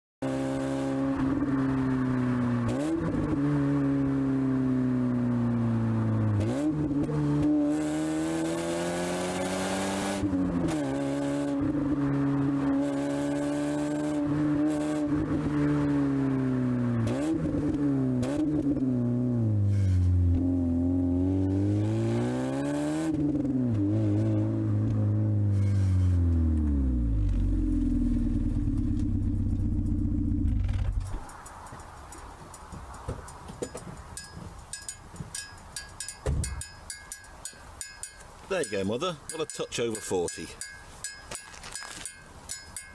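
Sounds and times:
car engine heard from inside: 23.2 - 31.8.

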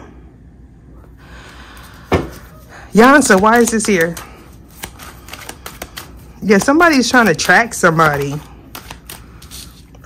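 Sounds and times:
cards being shuffled: 1.8 - 10.0.

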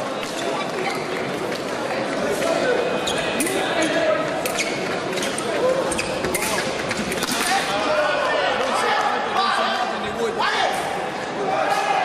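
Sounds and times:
shoes thumping and squeaking: 3.0 - 7.6.

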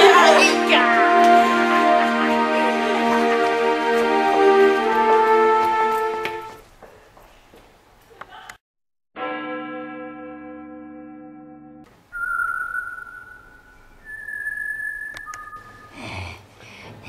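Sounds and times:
held musical chord: 0.0 - 6.6
long whistled notes: 0.0 - 6.6, 12.1 - 16.0.

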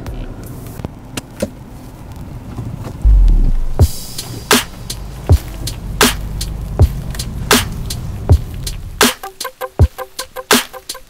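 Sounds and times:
faint low hum: 3.0 - 3.8.

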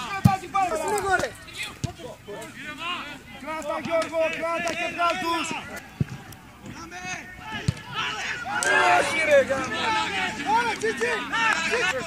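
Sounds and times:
men shouting encouragement: 0.0 - 1.8, 6.8 - 12.0.

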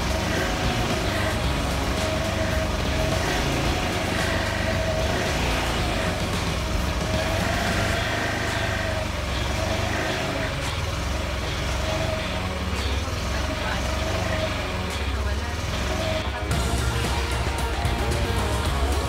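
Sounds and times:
scooter engine idling: 0.0 - 19.0.

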